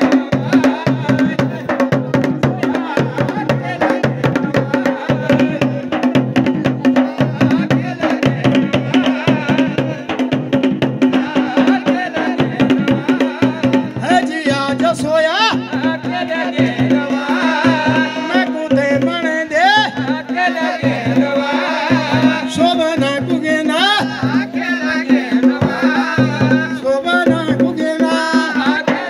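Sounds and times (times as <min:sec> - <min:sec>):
driving drumming: 0:00.0 - 0:29.0.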